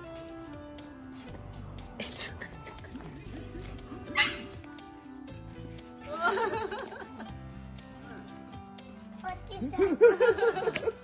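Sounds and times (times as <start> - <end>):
background music with held notes: 0.0 - 11.0
dog barking: 4.1 - 4.6.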